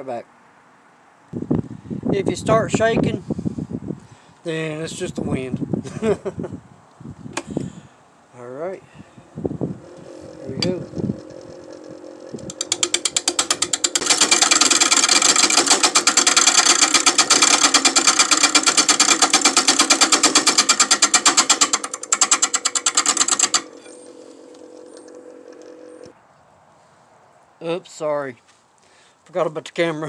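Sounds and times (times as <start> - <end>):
wood lathe humming: 9.7 - 26.1
turning tool knocking on wood: 9.8 - 23.8.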